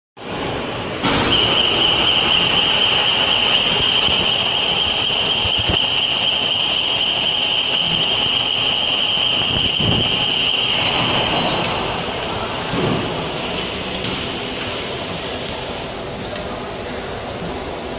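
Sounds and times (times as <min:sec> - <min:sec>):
high steady whine: 0:00.2 - 0:17.9.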